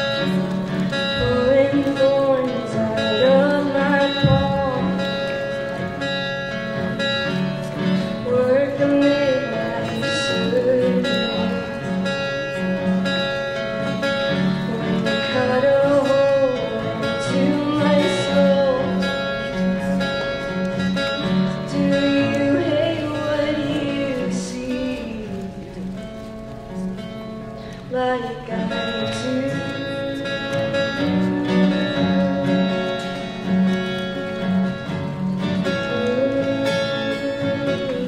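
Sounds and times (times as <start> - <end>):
person singing melody: 0.0 - 26.2, 27.6 - 38.0
acoustic guitar picking: 0.0 - 38.0.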